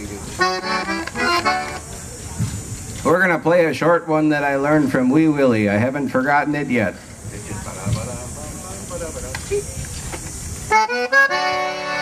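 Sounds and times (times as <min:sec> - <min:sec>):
faint background voices: 0:00.0 - 0:03.8, 0:04.6 - 0:12.0
concertina playing chords: 0:00.4 - 0:01.8, 0:10.7 - 0:12.0
hiss: 0:06.9 - 0:12.0.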